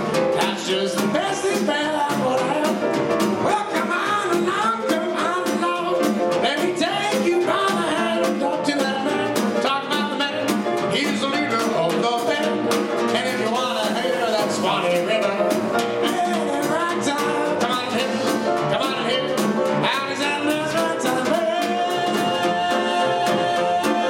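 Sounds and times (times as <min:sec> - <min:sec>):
drum kit quick beat: 0:00.0 - 0:24.0
grand piano: 0:00.0 - 0:24.0.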